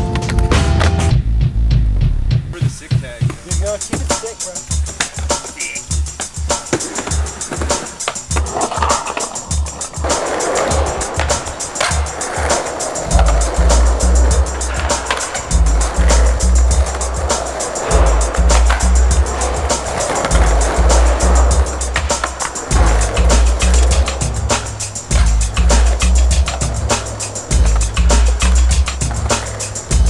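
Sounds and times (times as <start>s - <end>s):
skateboard wheels rolling on concrete: 0.0s - 1.2s, 2.6s - 30.0s
music with heavy bass beat: 0.0s - 30.0s
skateboard clicks: 3.3s - 30.0s.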